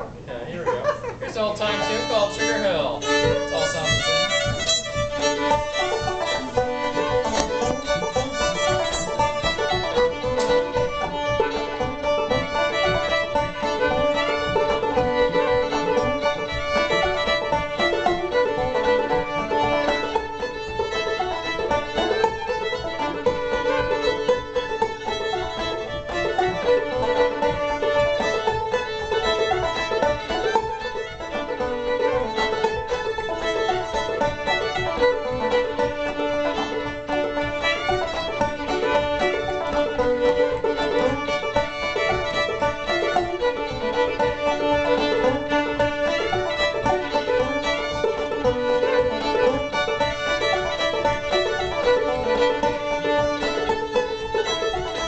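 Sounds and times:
fiddle bowing a melody: 0.0s - 0.3s, 1.1s - 55.0s
picked banjo: 0.0s - 55.0s.

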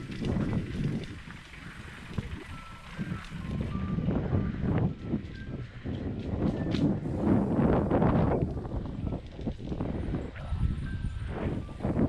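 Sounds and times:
bike tyres rumbling on dirt: 0.0s - 10.3s.

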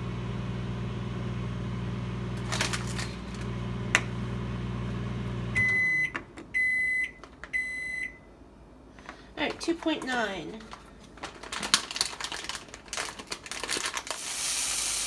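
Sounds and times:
microwave oven humming: 0.0s - 8.6s
microwave beeps: 5.4s - 8.3s.

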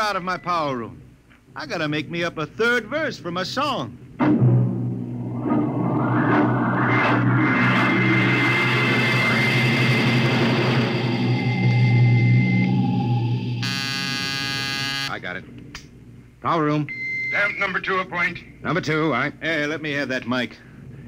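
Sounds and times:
rush of noise: 4.2s - 13.6s
thin high whine: 5.0s - 15.2s
harsh electric buzzer: 13.6s - 15.1s.

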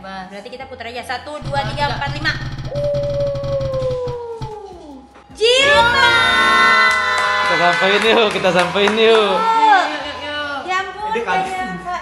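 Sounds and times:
spinning wheel ticking: 1.4s - 4.6s.

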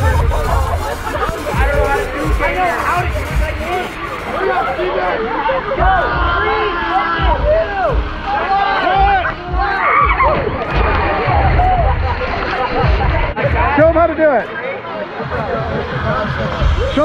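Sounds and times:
music playing: 0.0s - 17.0s
teenagers talking and calling out: 0.0s - 17.0s.

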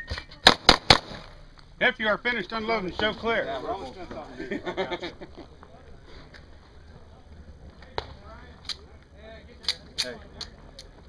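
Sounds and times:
pistol shots: 0.4s - 1.3s.

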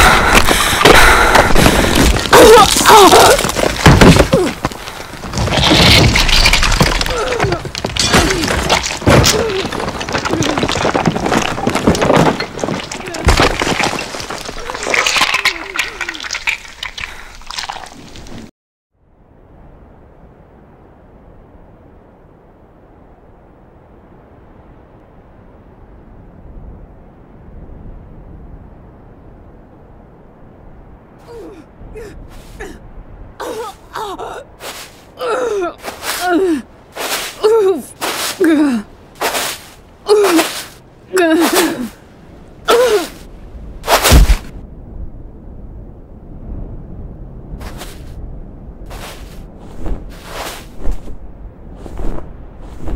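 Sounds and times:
crackling and breaking impacts: 0.0s - 18.5s, 43.8s - 44.6s.

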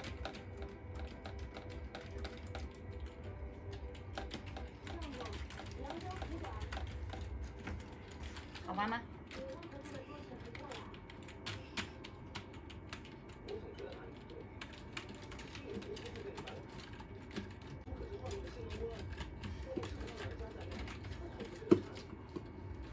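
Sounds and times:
computer keyboard keys clicking: 0.0s - 22.4s.

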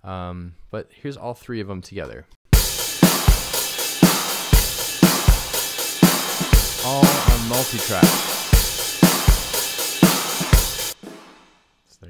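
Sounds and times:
cymbals and hi-hat: 2.5s - 11.6s.

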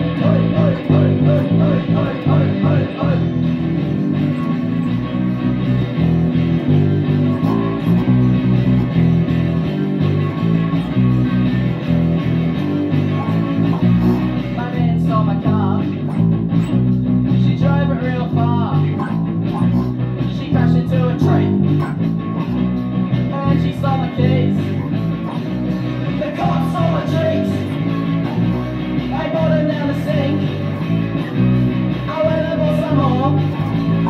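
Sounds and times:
electric bass guitar: 0.0s - 34.0s
punk rock track: 0.0s - 34.0s.

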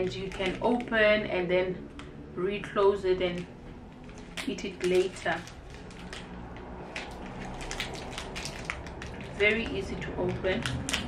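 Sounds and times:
plastic wrapper crinkling: 0.0s - 0.9s, 4.0s - 9.8s, 10.6s - 11.0s.

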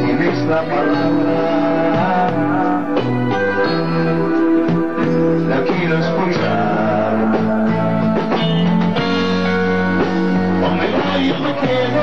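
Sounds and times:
rock band playing: 0.0s - 12.0s.

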